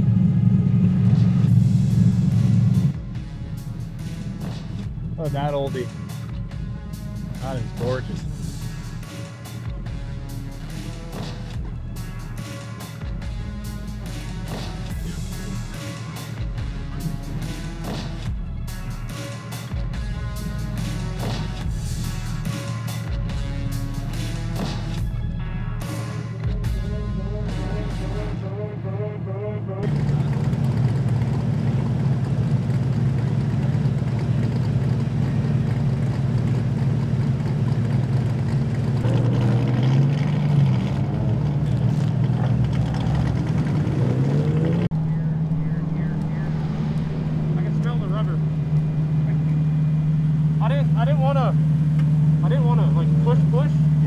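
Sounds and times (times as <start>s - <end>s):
music: 0.0s - 29.9s
car engine idling and revving: 0.0s - 54.0s.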